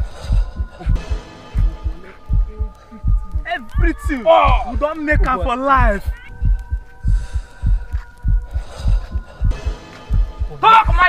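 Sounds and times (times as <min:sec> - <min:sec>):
deep thumping beat: 0:00.0 - 0:11.0
held steady synth tones: 0:00.0 - 0:11.0.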